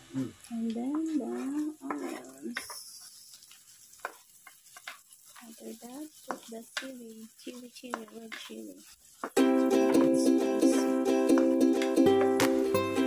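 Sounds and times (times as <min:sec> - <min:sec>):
onions sizzling in butter: 0:00.0 - 0:13.0
wooden spatula scraping wok: 0:00.3 - 0:13.0
background music: 0:09.4 - 0:13.0.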